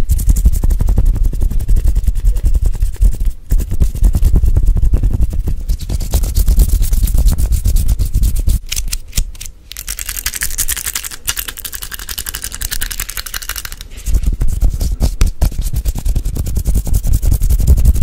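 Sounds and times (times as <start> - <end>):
hands rubbing on microphone: 0.0 - 8.6, 10.3 - 18.0.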